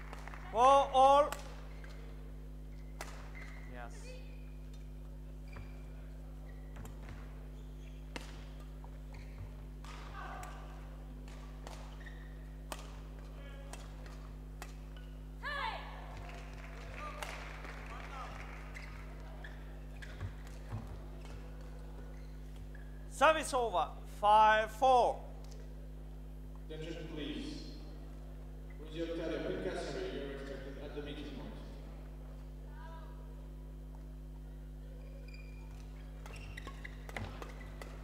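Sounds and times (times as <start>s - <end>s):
low electrical hum: 0.0s - 38.0s
shoes squeaking on court floor: 1.4s - 15.4s, 18.4s - 23.1s, 27.9s - 28.9s, 33.8s - 38.0s
racket striking shuttlecock: 3.0s - 3.4s, 8.1s - 15.1s, 35.8s - 38.0s.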